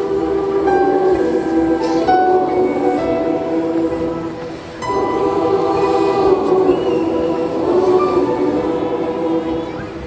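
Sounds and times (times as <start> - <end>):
choir singing held chords: 0.0 - 10.0.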